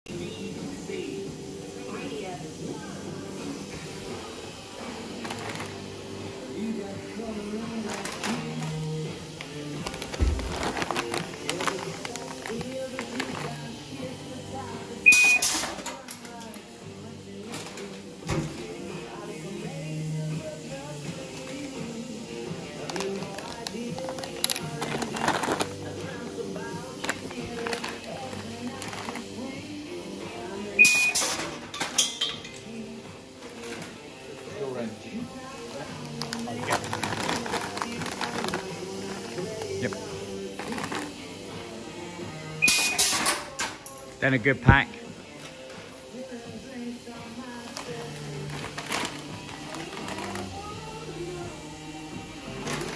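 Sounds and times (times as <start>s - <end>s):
metal detector beep: 15.0s - 15.5s, 30.8s - 31.3s, 42.6s - 43.0s.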